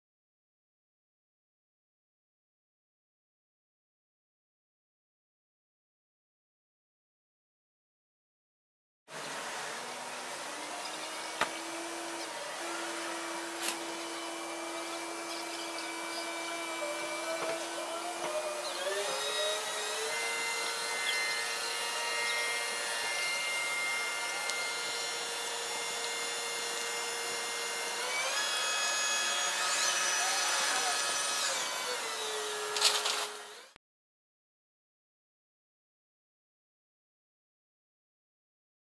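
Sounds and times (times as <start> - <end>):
crane engine and hydraulics whining: 9.1 - 33.8.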